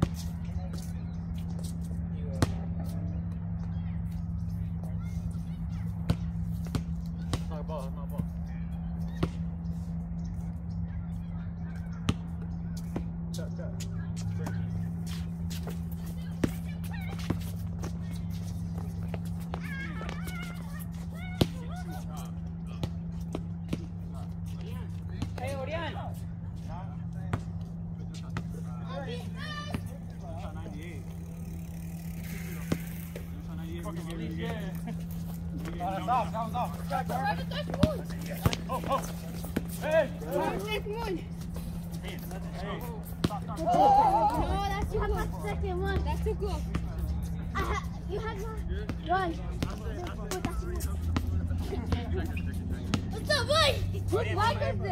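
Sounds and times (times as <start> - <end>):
steady low hum: 0.0 - 54.9
players shouting and talking: 2.0 - 54.9
basketball bouncing on concrete: 6.0 - 7.6, 12.0 - 13.1, 37.4 - 39.8, 48.8 - 52.1.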